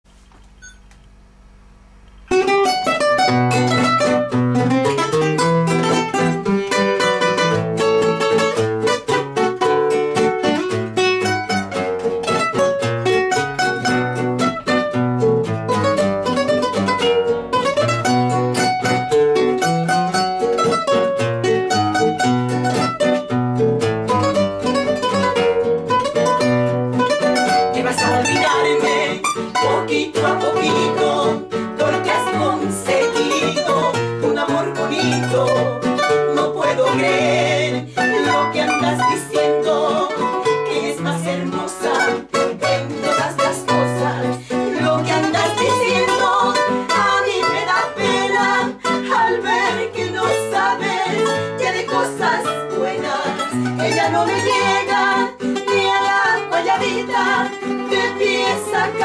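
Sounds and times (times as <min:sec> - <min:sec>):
classical guitars playing: 0:02.1 - 0:59.0.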